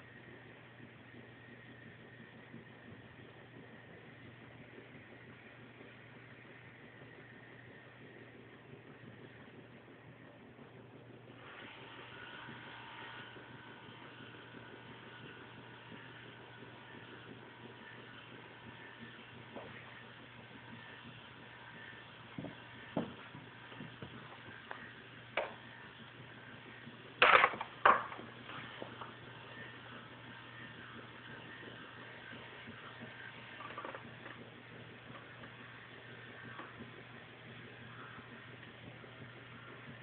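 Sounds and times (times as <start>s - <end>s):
faint steady hum: 0.0s - 40.0s.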